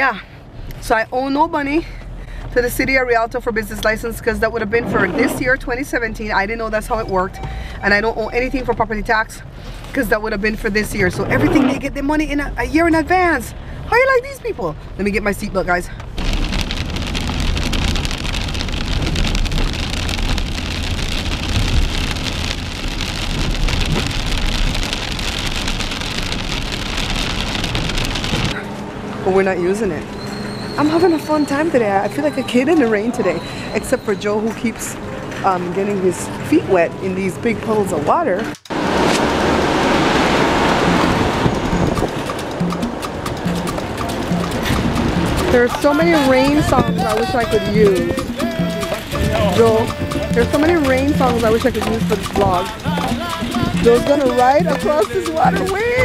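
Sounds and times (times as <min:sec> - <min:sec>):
engine and tyres rumbling: 0:00.0 - 0:56.0
rain pattering on car: 0:14.0 - 0:28.6, 0:38.7 - 0:56.0
heavy rain hissing: 0:16.2 - 0:28.6
faint scattered clicks: 0:42.0 - 0:56.0.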